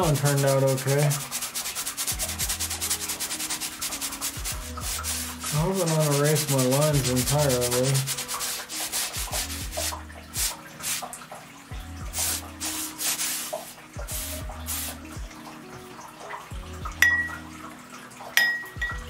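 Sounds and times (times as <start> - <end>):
bristle brush scrubbing canvas: 0.0 - 11.2, 12.0 - 15.1
sharp clink: 17.0 - 17.4, 18.4 - 19.0.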